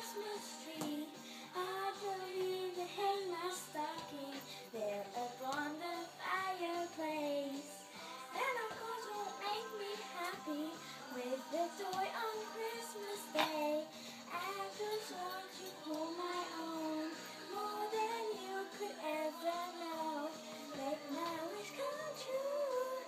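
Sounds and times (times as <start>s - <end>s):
backing track music: 0.0s - 23.0s
girl singing: 0.0s - 23.0s.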